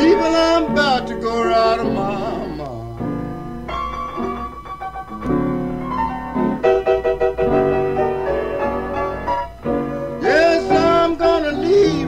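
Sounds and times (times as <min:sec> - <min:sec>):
solo blues piano: 0:00.0 - 0:12.0.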